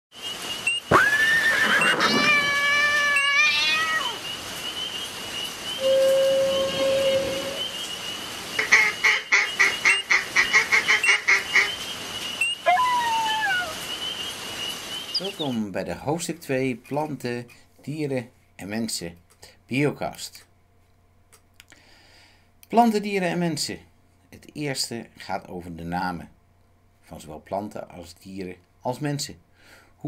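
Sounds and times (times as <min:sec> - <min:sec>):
falling animal calls: 0:00.6 - 0:05.1, 0:05.7 - 0:15.5
drawn-out animal calls: 0:00.9 - 0:04.2, 0:12.6 - 0:13.8
rapid pulsing animal call: 0:00.9 - 0:04.9, 0:12.4 - 0:14.1
low steady animal note: 0:05.8 - 0:07.9.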